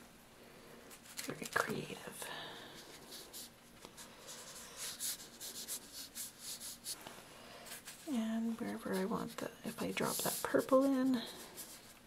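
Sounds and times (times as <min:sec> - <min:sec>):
brush stroking on paper: 0:02.7 - 0:07.0, 0:07.6 - 0:12.0.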